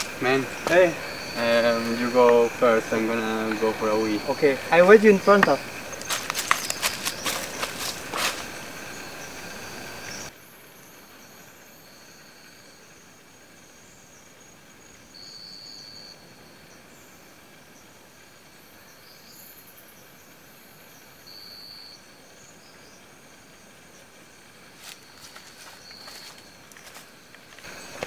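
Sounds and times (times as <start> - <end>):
shrill insect note: 0.0 - 9.7
insects chorus: 0.0 - 28.0.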